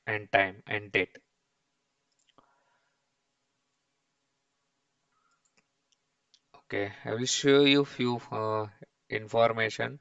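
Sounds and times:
faint clicks: 2.0s - 2.6s, 5.1s - 6.6s.

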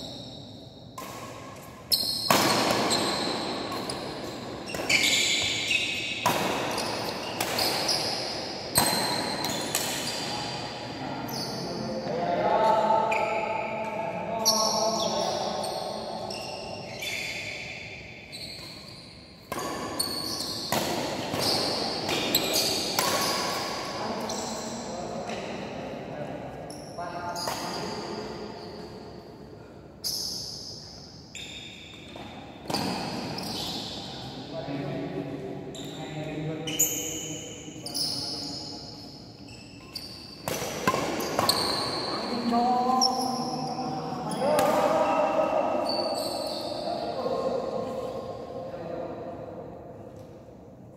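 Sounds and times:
shoes squeaking on court floor: 0.0s - 10.6s, 11.3s - 11.8s, 14.4s - 25.5s, 30.0s - 34.4s, 35.7s - 48.4s
voices in a large room: 0.0s - 50.9s.

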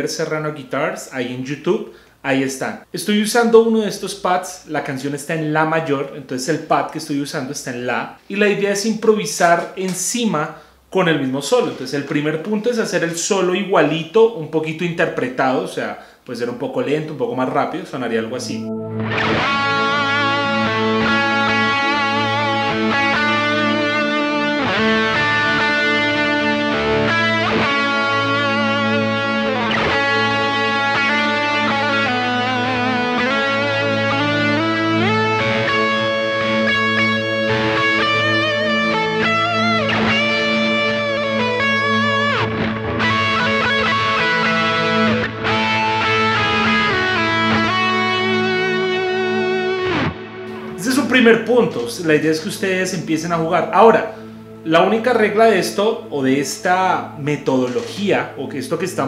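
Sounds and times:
electric guitar lead melody: 18.4s - 59.0s
ambient synth pad drone: 18.6s - 23.4s.

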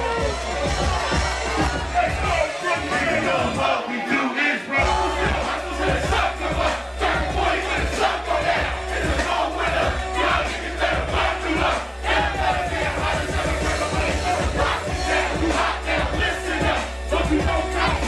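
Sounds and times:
crowd shouting along: 0.0s - 18.0s
hip-hop beat with heavy bass: 0.0s - 18.0s.

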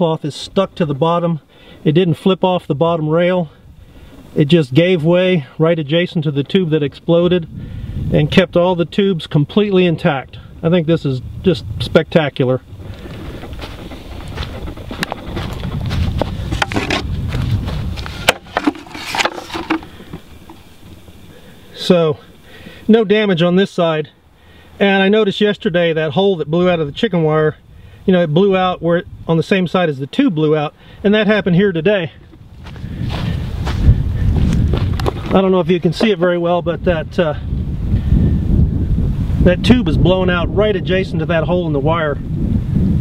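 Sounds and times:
wind buffeting microphone: 2.9s - 22.9s, 25.8s - 29.8s, 31.1s - 43.0s
footsteps clicks and rustles: 12.7s - 21.5s, 32.2s - 36.2s
handheld camera handling noise: 14.5s - 17.1s, 17.8s - 21.2s.

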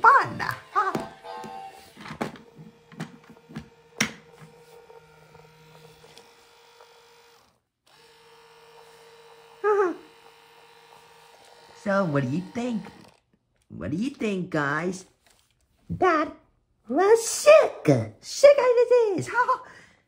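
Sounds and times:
toy motor humming: 0.0s - 13.3s.

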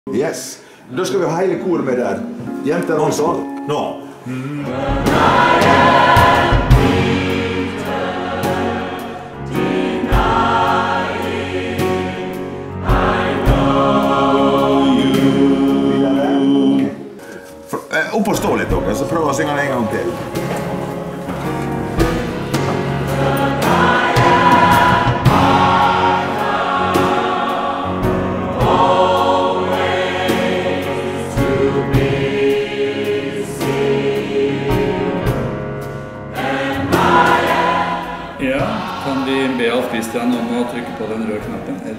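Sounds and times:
low piano notes: 1.3s - 41.9s
mixed choir singing: 4.2s - 17.3s, 18.4s - 41.9s
drum kit: 4.6s - 17.0s, 18.3s - 41.6s.

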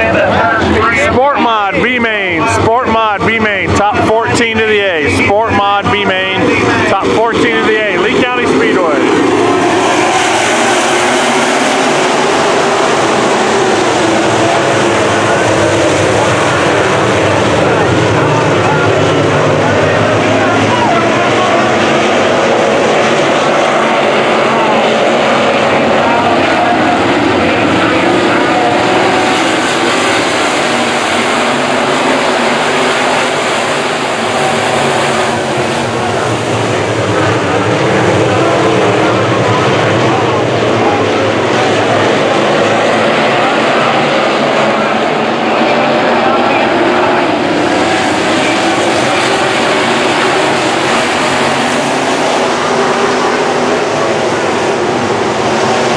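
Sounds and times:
race car engines roaring: 0.0s - 55.9s.

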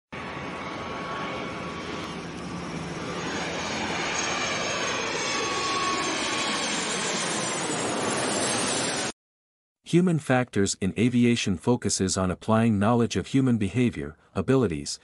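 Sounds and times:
jet aircraft engine rushing: 0.2s - 9.1s.

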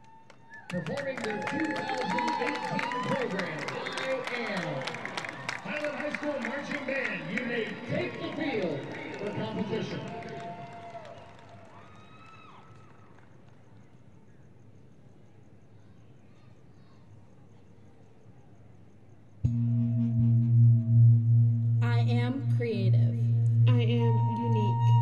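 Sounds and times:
crowd cheering: 0.0s - 13.5s
scattered clapping: 0.0s - 13.8s
announcer voice echoing: 19.5s - 25.0s.

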